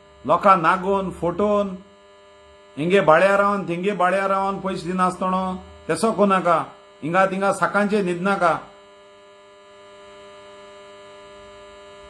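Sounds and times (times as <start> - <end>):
electrical hum: 0.0 - 12.0
speech: 0.2 - 1.8, 2.8 - 8.7.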